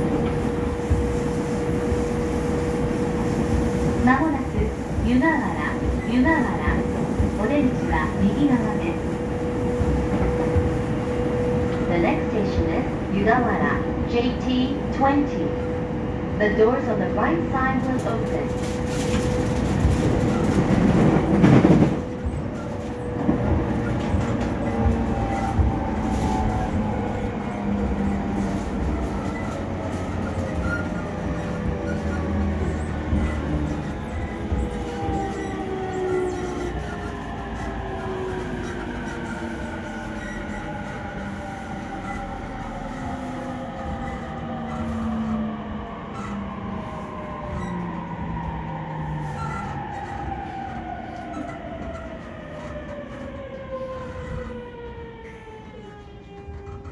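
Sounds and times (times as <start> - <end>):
wheels rumbling on rail: 0.0 - 56.9.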